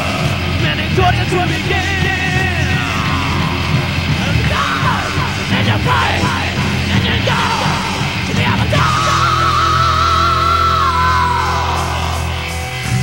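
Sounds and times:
heavy metal band playing: 0.0s - 13.0s
high sliding guitar notes: 0.0s - 13.0s.

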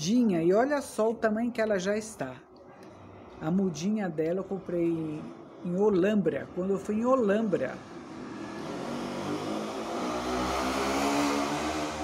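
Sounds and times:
vehicle engine passing: 6.9s - 12.0s.

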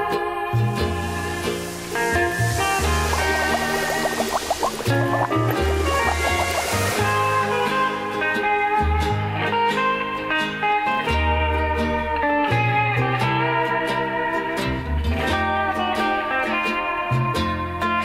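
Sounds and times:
plucked rhythm: 0.0s - 18.0s
steel guitar melody: 0.0s - 18.0s
bass line: 2.1s - 8.0s.

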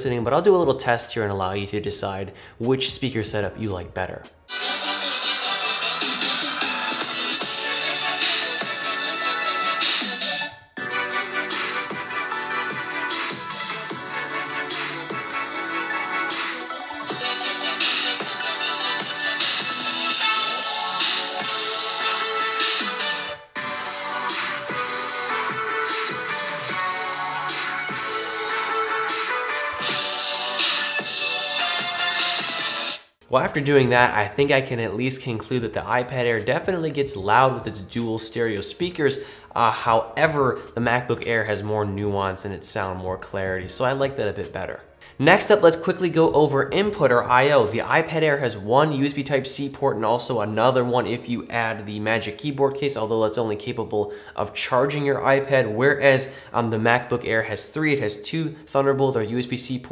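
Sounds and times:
electronic music through speakers: 4.5s - 33.0s.

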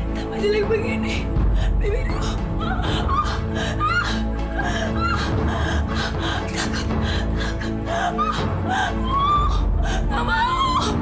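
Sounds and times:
dramatic background music: 0.0s - 11.0s
woman sobbing and wailing: 0.0s - 11.0s.

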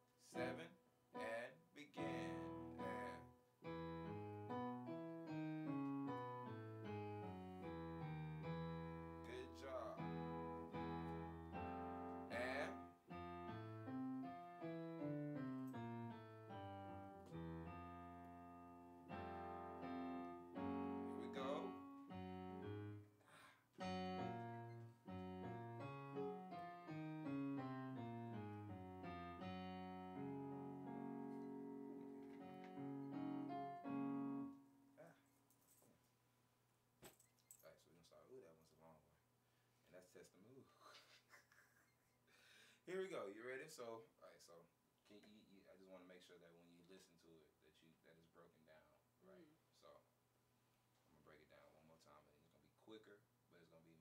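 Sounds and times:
synthesizer piano chords and melody: 0.0s - 23.2s, 23.8s - 35.0s.

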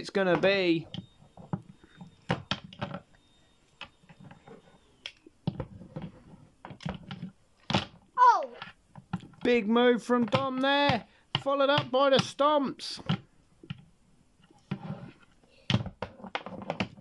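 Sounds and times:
child's voice gliding down: 8.2s - 8.6s.

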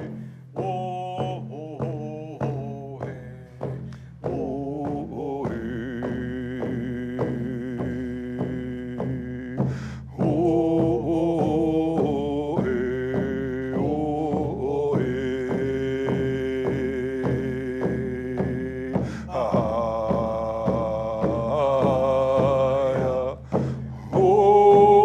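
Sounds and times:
hand drums beating: 0.0s - 25.0s
men singing together: 0.0s - 25.0s.

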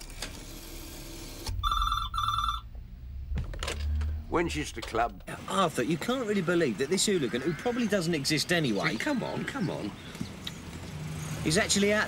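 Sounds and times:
telephone ringing: 1.5s - 2.7s
low rumble: 1.5s - 6.2s.

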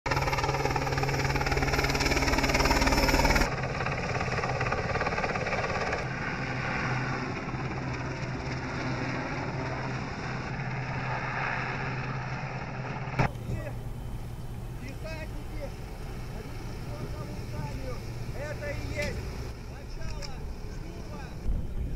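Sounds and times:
helicopter rotor chopping: 0.1s - 21.9s.

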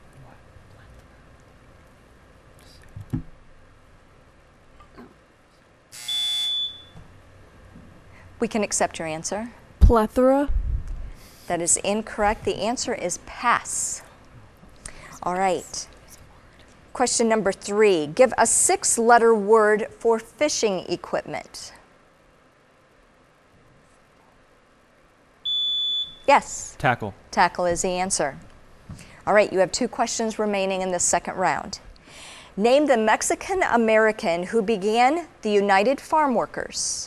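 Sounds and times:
quiz show buzzer: 5.9s - 7.0s, 25.5s - 26.3s.

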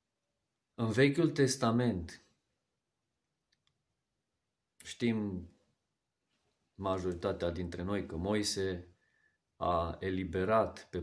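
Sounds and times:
man speaking: 0.8s - 2.4s, 4.8s - 5.6s, 6.8s - 8.9s, 9.6s - 11.0s
faint small clicks: 3.4s - 3.9s.

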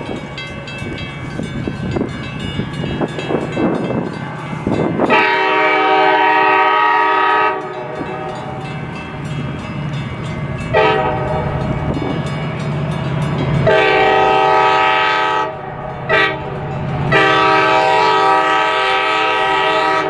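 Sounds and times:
locomotive air horn blasts: 5.0s - 8.5s, 10.7s - 11.6s, 13.6s - 20.0s.

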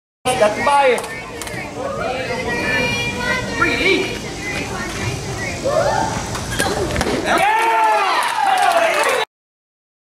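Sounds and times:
crowd chatter: 0.2s - 9.3s
girls cheering: 5.6s - 6.2s, 7.3s - 9.3s.

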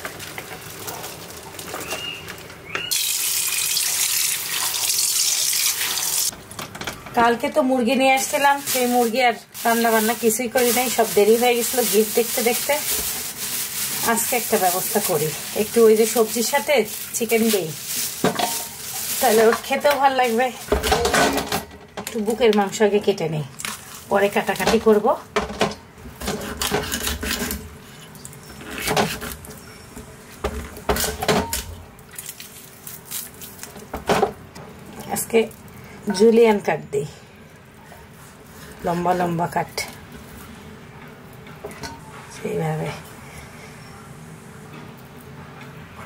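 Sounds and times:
tap water running onto pan: 2.9s - 6.3s
person talking: 7.2s - 12.9s
vegetables sliding into colander: 8.2s - 20.6s.

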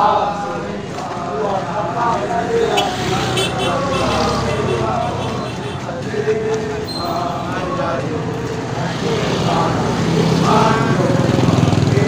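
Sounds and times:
soldiers chanting marching song: 0.0s - 12.0s.

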